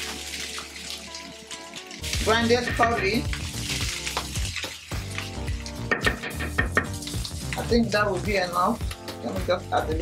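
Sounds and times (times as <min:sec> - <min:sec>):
food sizzling in frying pan: 0:00.0 - 0:09.6
background music: 0:00.0 - 0:10.0.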